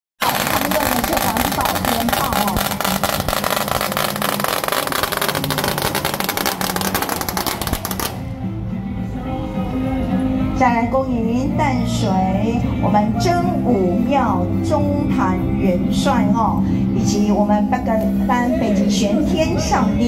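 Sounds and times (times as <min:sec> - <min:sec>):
voice over loudspeaker: 0:00.2 - 0:02.8
firecrackers crackling: 0:00.2 - 0:08.4.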